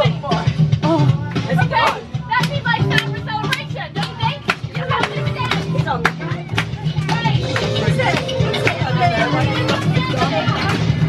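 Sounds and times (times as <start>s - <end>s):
background music: 0.0s - 11.0s
chatter of passengers: 0.0s - 11.0s
excited children's voices: 0.8s - 11.0s.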